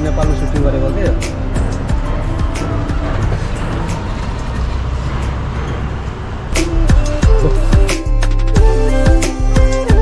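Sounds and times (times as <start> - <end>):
road and wind noise: 0.0 - 8.4
music playing: 0.0 - 10.0.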